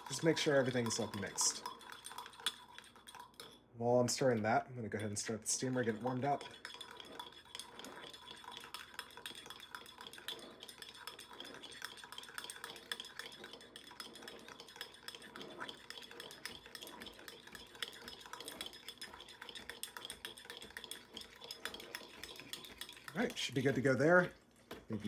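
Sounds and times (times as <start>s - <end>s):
spoon clinking and scraping in mug: 0.0s - 3.6s, 4.2s - 23.8s.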